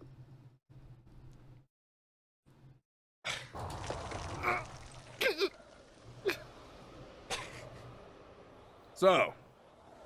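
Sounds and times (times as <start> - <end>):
rumbling debris: 3.6 - 9.0.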